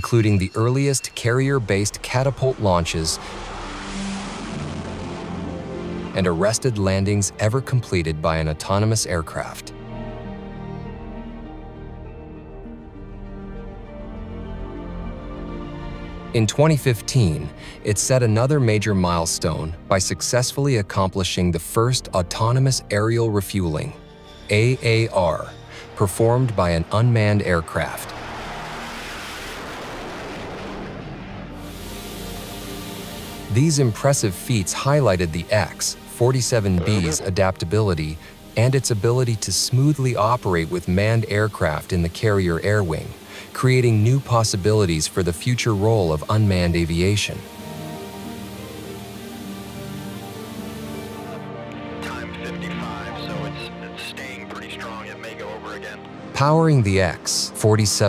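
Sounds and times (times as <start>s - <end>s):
jet engine rushing: 0.0s - 7.1s, 24.5s - 51.3s
faint background music: 0.0s - 28.2s, 31.6s - 58.0s.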